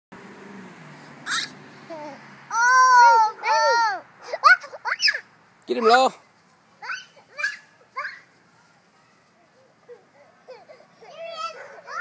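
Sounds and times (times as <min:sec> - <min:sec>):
toddlers murmuring: 0:01.3 - 0:05.1, 0:06.8 - 0:12.0
child squealing with laughter: 0:01.3 - 0:05.2
child's voice: 0:02.5 - 0:04.6, 0:10.9 - 0:12.0.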